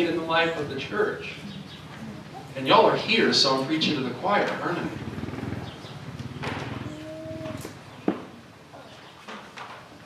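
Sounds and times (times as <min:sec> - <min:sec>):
cow mooing: 0:06.8 - 0:07.7.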